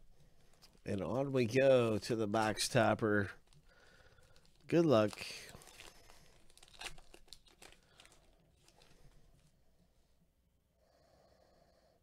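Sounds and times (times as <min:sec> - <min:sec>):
foil wrapper tearing and crinkling: 0:03.4 - 0:09.2.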